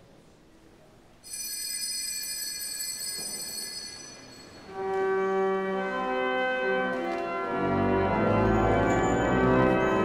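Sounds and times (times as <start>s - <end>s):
bell ringing: 1.2s - 5.3s
pipe organ chord: 4.7s - 10.0s.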